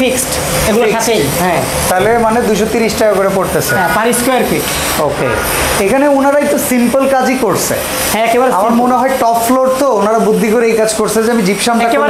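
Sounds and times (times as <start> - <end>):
man talking: 1.8 - 12.0.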